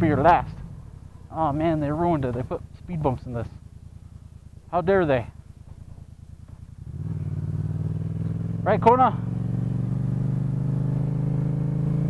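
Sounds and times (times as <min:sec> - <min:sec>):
motorcycle engine cruising: 0:00.0 - 0:12.0.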